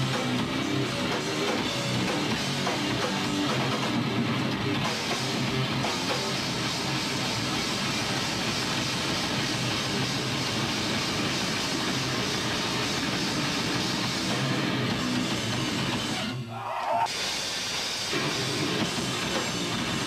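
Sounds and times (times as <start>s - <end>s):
fast drumming: 0.0s - 16.3s, 17.1s - 20.0s
bass guitar: 0.0s - 17.1s, 18.1s - 20.0s
distorted electric guitar: 0.0s - 20.0s.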